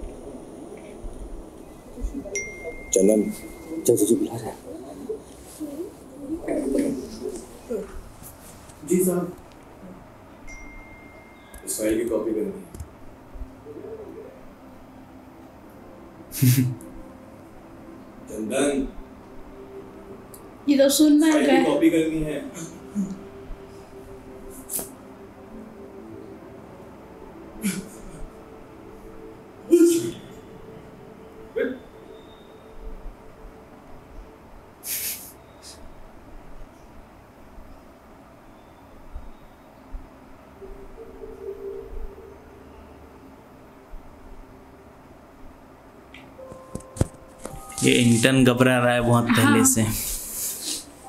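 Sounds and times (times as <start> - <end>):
bird cooing: 0.7 - 8.0, 13.6 - 14.5, 40.6 - 43.3.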